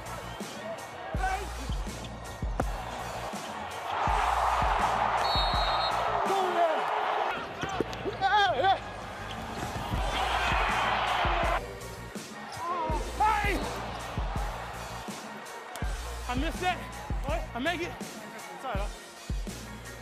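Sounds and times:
crowd roaring: 0.0 - 11.6, 12.2 - 16.2.

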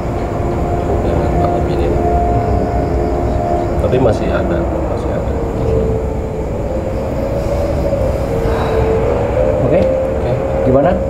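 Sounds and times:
low mechanical rumble with hum: 0.0 - 11.0.

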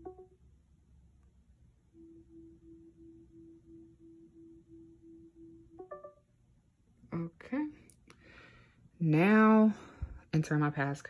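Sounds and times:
low pulsing hum: 0.0 - 7.9.

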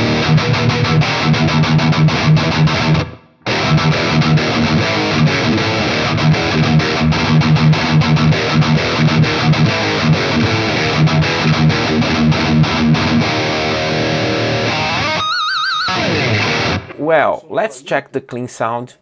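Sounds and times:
distorted electric guitar riffing: 0.0 - 18.0.

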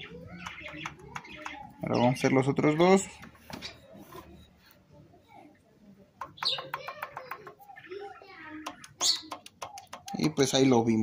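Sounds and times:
pistons clicking against cylinder walls: 8.6 - 10.4.

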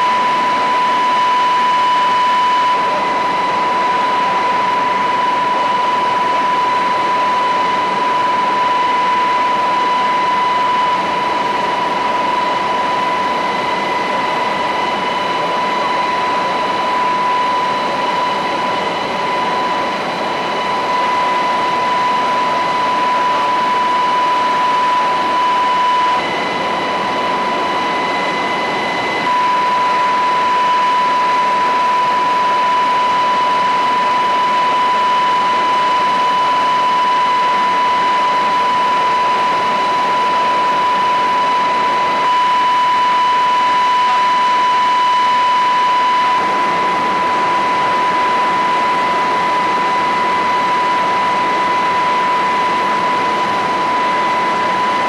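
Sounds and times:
helicopter turbine and rotor drone: 0.0 - 55.0
high whine: 0.0 - 55.0.

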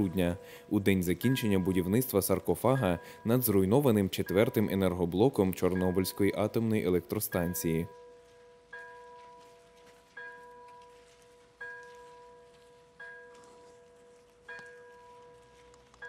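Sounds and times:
bell tolling slowly: 0.0 - 15.9.

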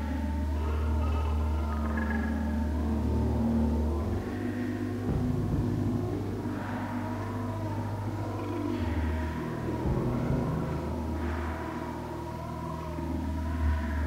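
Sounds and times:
layered held synth tones: 0.0 - 14.0
synth bass drone: 0.0 - 14.0.

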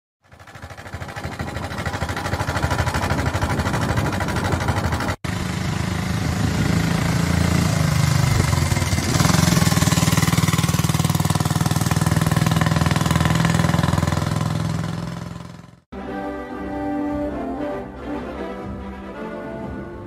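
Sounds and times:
motorcycle engine running: 0.2 - 15.9.

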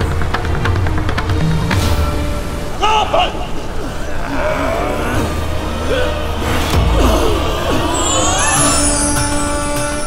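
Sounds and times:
dramatic background score: 0.0 - 10.0
swooping sweeps: 7.4 - 10.0.

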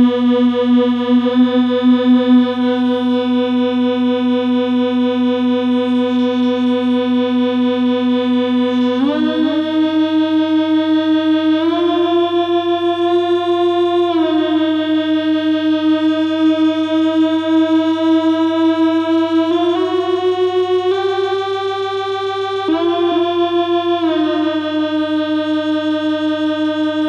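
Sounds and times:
buzzy synthesizer drone: 0.0 - 27.0
steady low hum: 0.0 - 27.0.

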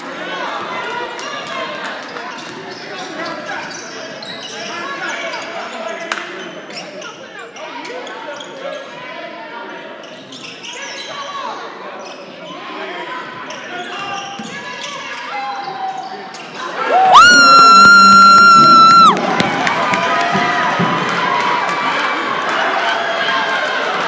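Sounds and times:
crowd cheering: 16.6 - 24.0.

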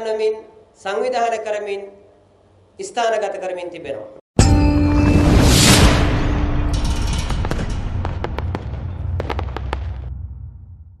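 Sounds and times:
crackling pops: 7.5 - 10.1.

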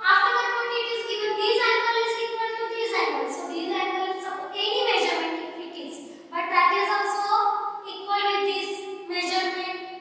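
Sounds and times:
woman speaking: 0.0 - 9.8.

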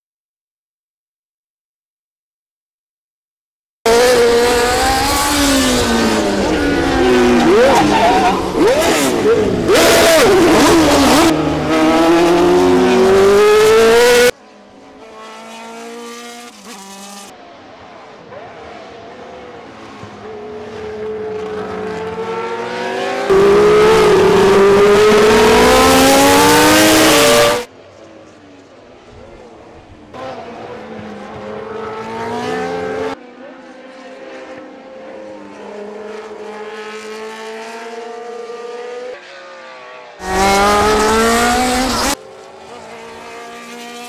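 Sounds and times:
racing car engines at high revs: 3.9 - 44.0.

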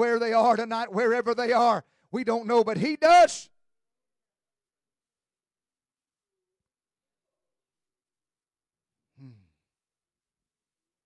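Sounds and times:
man sighing: 9.1 - 9.7.

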